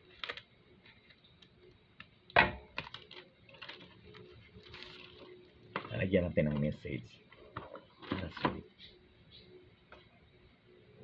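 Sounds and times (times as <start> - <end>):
paper rustling: 2.8 - 6.8.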